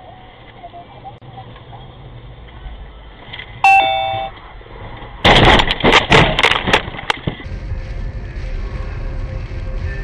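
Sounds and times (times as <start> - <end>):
vehicle rumble: 0.0 - 10.0
two-note falling electronic chime: 3.6 - 4.3.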